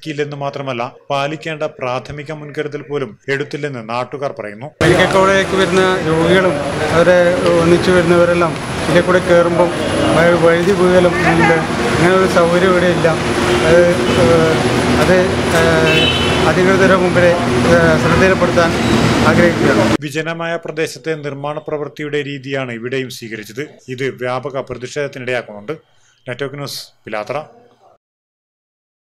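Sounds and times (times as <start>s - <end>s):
man speaking: 0.0s - 28.0s
road traffic noise: 4.8s - 20.0s.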